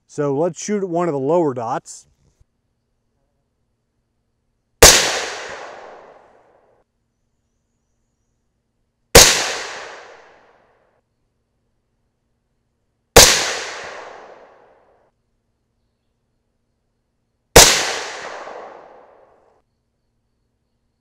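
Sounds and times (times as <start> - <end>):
suppressed rifle shots: 4.8 - 6.4, 9.2 - 10.4, 13.2 - 14.7, 17.6 - 19.3.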